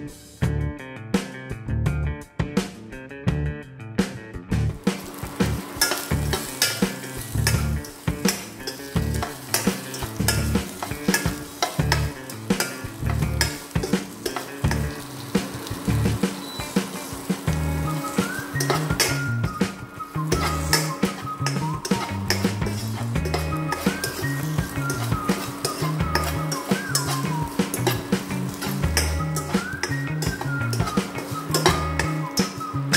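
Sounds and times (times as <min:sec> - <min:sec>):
background music with bass line: 0:00.0 - 0:32.9
okra sizzling in a wok: 0:04.8 - 0:32.9
spoon scraping and clinking on pan: 0:05.6 - 0:17.1, 0:18.2 - 0:19.3, 0:20.2 - 0:32.9.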